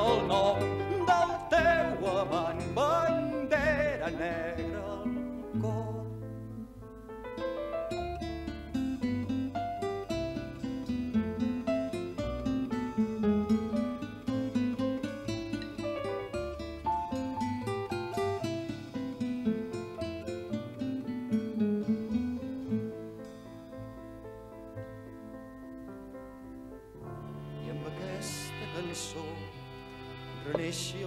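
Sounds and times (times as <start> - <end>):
acoustic guitar plucked notes: 0.0 - 31.0.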